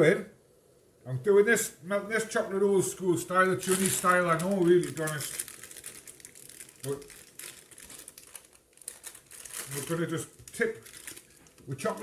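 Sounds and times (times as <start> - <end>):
water boiling and bubbling: 3.8 - 12.0.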